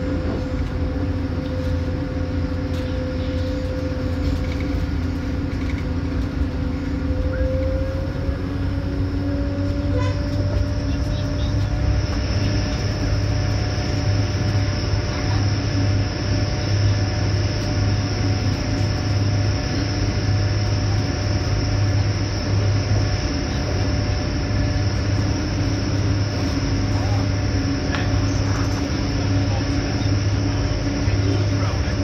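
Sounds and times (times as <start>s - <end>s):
low drone: 0.0s - 32.0s
train wheels rumbling: 0.0s - 32.0s.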